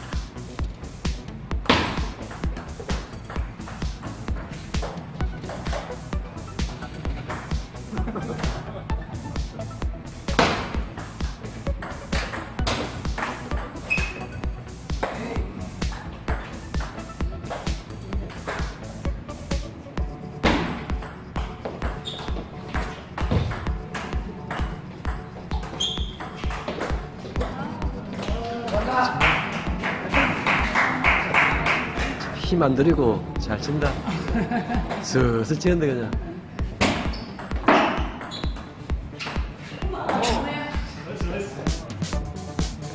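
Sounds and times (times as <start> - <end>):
background music with beat: 0.0 - 42.9
table tennis ball clicks: 11.8 - 14.3, 15.8 - 18.8.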